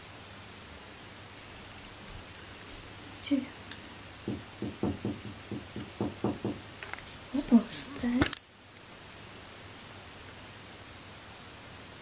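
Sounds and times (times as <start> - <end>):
dull knocks: 4.2 - 6.6.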